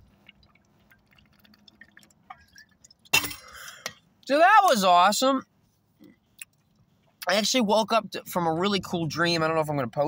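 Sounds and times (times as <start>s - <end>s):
swallowing and liquid clicks: 0.0s - 4.0s, 6.0s - 7.3s.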